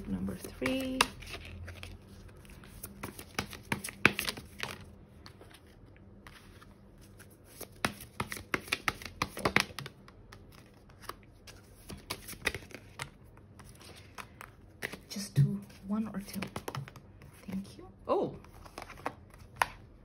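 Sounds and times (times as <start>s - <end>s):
cards shuffled and dealt: 0.0s - 17.6s, 18.4s - 19.8s.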